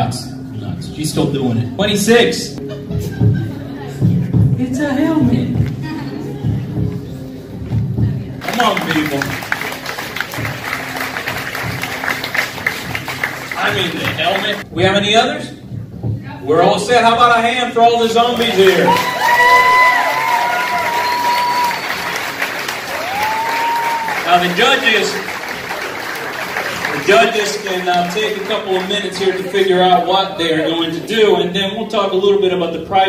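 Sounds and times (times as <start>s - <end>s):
audience clapping: 8.4s - 14.6s, 18.2s - 29.8s.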